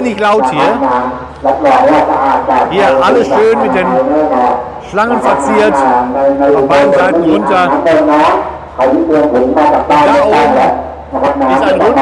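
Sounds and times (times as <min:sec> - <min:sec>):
amplified voice over loudspeakers: 0:00.0 - 0:12.0.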